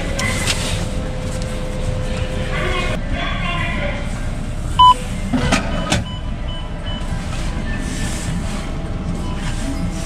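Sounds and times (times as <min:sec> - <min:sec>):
low background hum: 0:00.0 - 0:10.0
machine beeps: 0:04.8 - 0:05.0, 0:05.7 - 0:08.2, 0:09.1 - 0:10.0.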